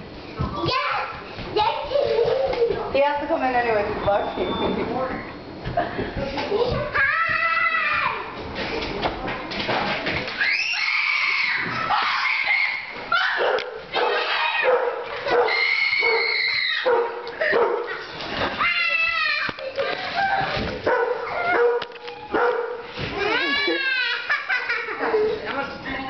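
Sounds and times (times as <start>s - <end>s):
dogs whining: 10.5s - 18.1s, 18.8s - 22.7s
dogs barking and yipping: 10.8s - 18.2s, 20.0s - 22.9s
camera being jostled: 21.8s - 22.2s.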